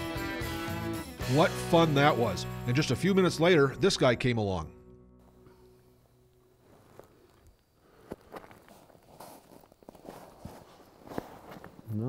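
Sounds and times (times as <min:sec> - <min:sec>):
rustling: 0:06.5 - 0:12.0
boots crunching on snowy ice: 0:08.0 - 0:11.9.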